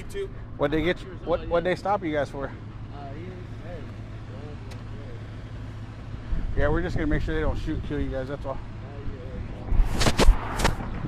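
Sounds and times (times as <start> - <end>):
vehicle engine idling: 0.0 - 11.0
sharp click: 9.9 - 10.9.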